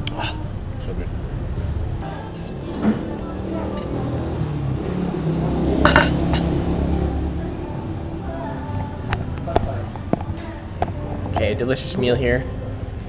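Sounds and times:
background music: 0:00.0 - 0:13.0
tableware clinking: 0:05.8 - 0:06.5.

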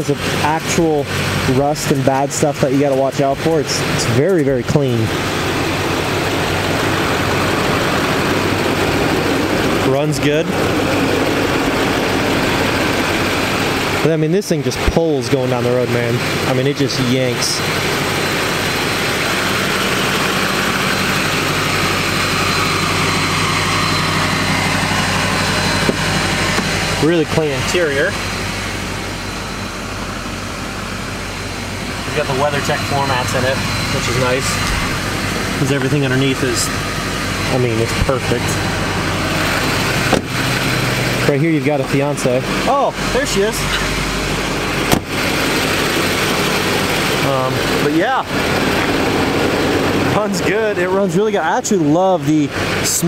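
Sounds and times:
diesel truck engine idling: 0:00.0 - 0:53.0
truck door shutting: 0:25.8 - 0:26.8, 0:39.8 - 0:40.7, 0:44.8 - 0:45.2.

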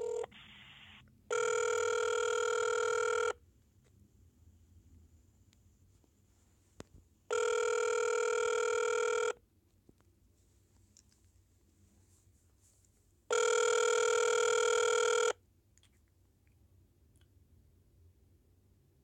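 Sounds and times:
telephone ringback tone: 0:00.0 - 0:03.4, 0:07.3 - 0:09.4, 0:13.3 - 0:15.4.

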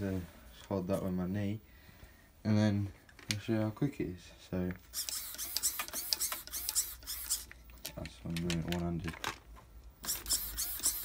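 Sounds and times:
servo whirring bursts: 0:04.9 - 0:07.5, 0:10.0 - 0:11.0
servo clicks: 0:04.9 - 0:08.0.

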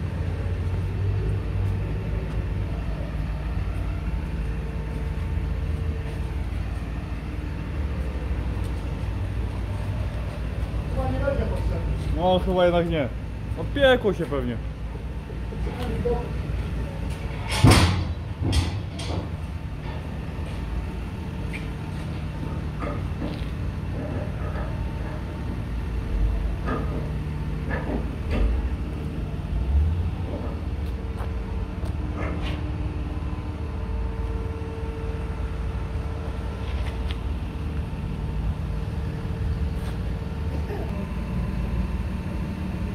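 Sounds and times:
vehicle engines rumbling: 0:00.0 - 0:42.9.

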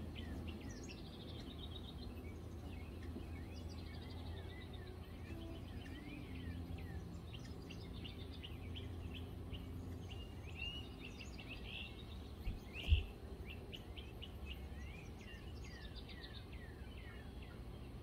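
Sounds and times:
steady low rumble: 0:00.0 - 0:16.9
birds chirping: 0:00.0 - 0:18.0.

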